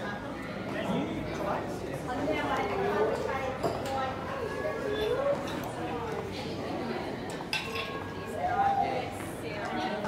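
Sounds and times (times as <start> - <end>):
murmur of dining room: 0.0 - 10.0
tableware clinking: 7.5 - 8.0.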